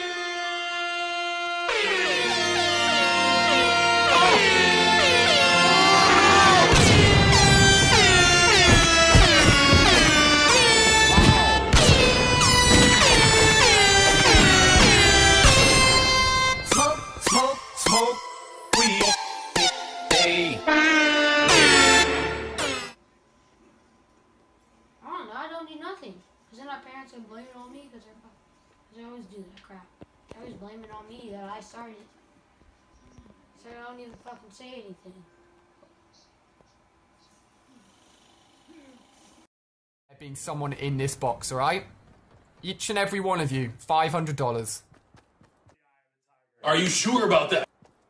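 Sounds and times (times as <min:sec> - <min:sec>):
air horn sound effect blasts: 0:00.0 - 0:17.4, 0:19.6 - 0:23.0.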